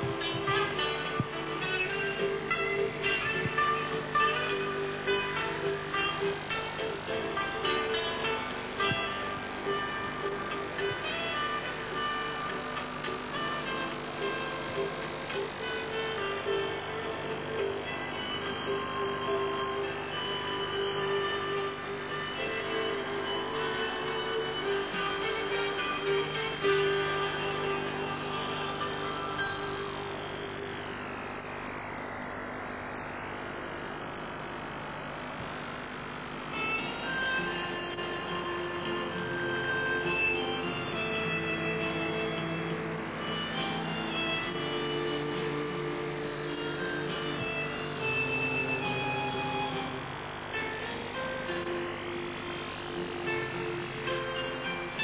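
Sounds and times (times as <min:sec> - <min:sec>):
slow instrumental music: 0:00.0 - 0:31.1, 0:36.5 - 0:55.0.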